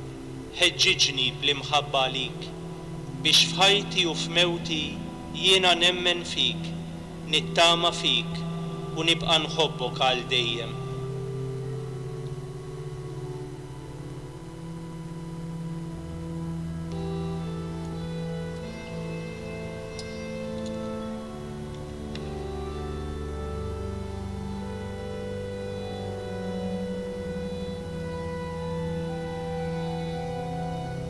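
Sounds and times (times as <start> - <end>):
organ playing held chords: 0.0 - 31.0.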